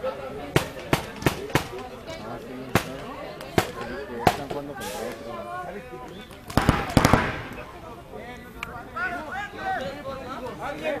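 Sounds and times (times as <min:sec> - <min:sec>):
paintball markers firing: 0:06.5 - 0:07.6.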